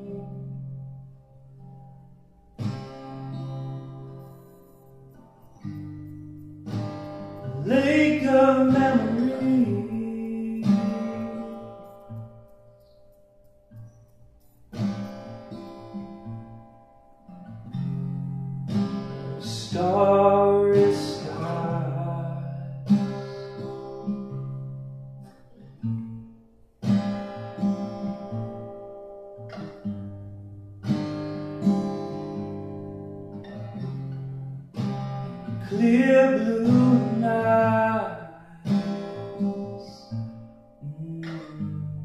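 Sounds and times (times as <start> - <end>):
acoustic guitar strumming: 0.0 - 42.0.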